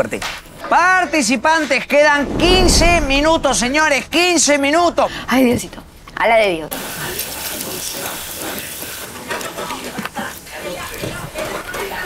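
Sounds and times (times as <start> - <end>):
food frying in pans: 6.7 - 12.0.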